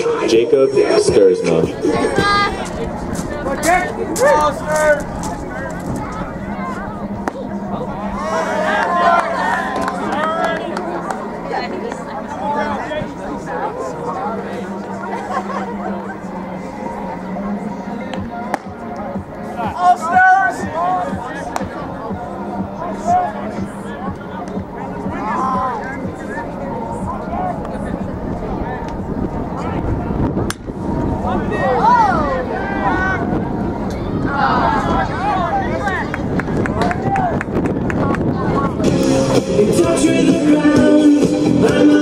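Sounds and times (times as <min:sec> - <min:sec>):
people chattering: 0:00.0 - 0:42.0
spectators' voices: 0:00.0 - 0:42.0
wind rumbling on microphone: 0:01.0 - 0:08.5, 0:26.1 - 0:39.9
crowd shouting: 0:01.7 - 0:18.6, 0:19.4 - 0:30.2, 0:30.8 - 0:37.4.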